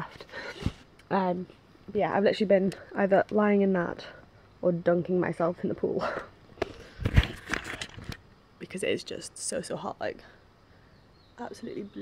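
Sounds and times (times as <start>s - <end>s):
camera handling knocks and rustles: 6.6s - 8.2s.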